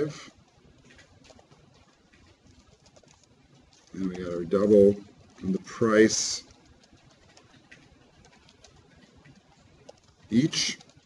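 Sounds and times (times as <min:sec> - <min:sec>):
keyboard typing: 0:00.0 - 0:11.0.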